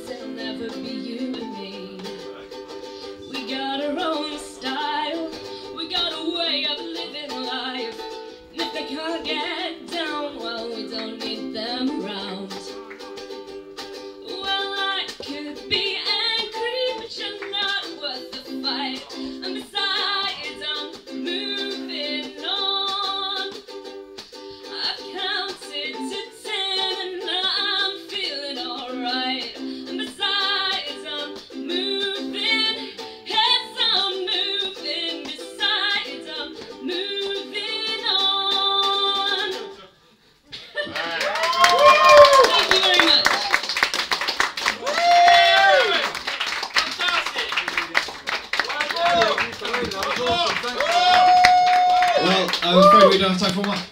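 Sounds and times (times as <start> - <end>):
woman singing: 0.0 - 2.3, 3.2 - 12.8, 14.2 - 23.6, 24.6 - 39.8, 42.1 - 43.4
ukulele strummed in chords: 0.0 - 39.8.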